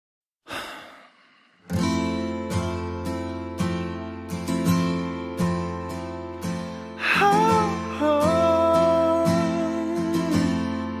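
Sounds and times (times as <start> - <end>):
acoustic guitar chord: 1.7 - 11.0.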